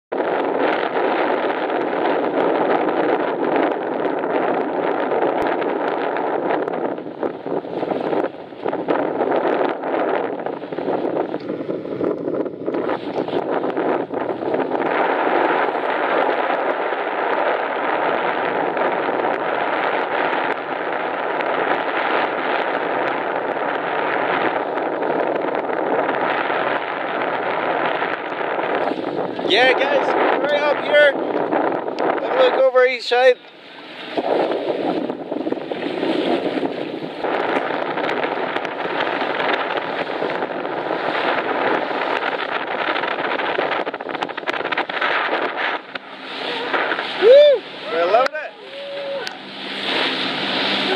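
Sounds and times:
water washing along boat hull: 0.1 - 50.9
wind buffeting microphone: 0.1 - 50.9.

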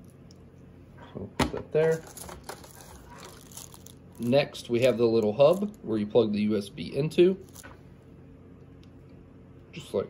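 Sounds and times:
plastic bag crinkling: 1.8 - 5.8, 7.4 - 7.8
rustling in cardboard box: 1.9 - 4.3.

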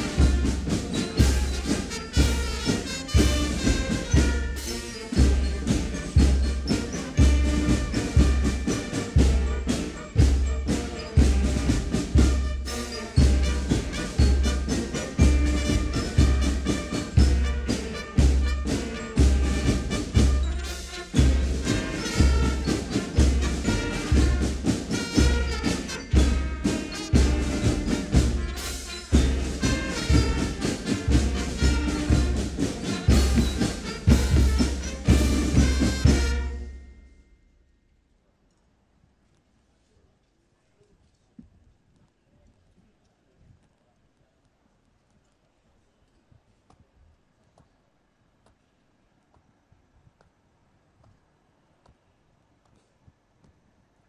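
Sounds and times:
brass band playing a march: 0.0 - 37.3.

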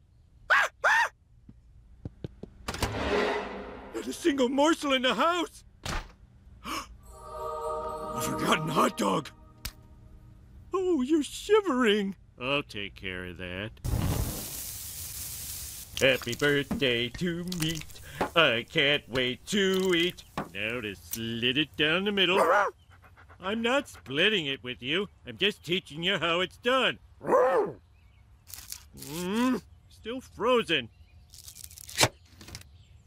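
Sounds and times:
person speaking: 7.1 - 9.6, 15.9 - 22.7
man's worried vocal sounds: 8.0 - 9.3, 20.6 - 22.7
hot dog sizzling on grill: 13.9 - 21.6.

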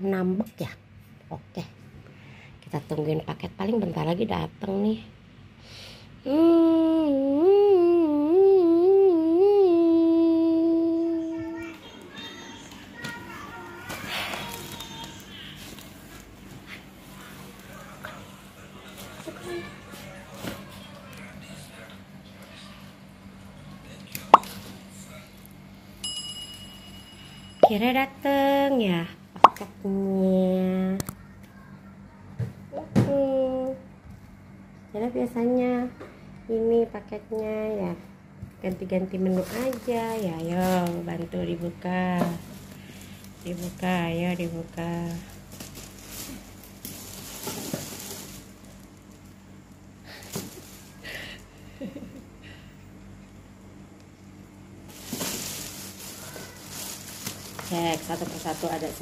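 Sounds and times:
plastic bag rustling: 12.9 - 20.8, 39.1 - 51.2, 54.8 - 59.0
bright bell ding: 26.0 - 27.9.

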